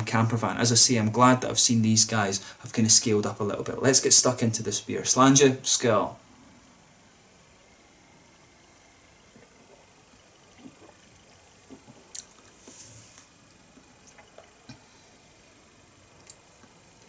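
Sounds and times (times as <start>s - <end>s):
man sipping and swallowing: 9.2s - 15.1s
small mouth clicks: 10.5s - 12.5s
short breathy hiss: 12.5s - 13.3s.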